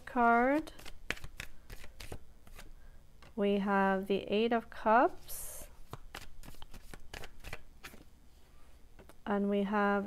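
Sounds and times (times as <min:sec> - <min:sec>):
cards being handled: 0:00.2 - 0:03.4, 0:05.8 - 0:08.1.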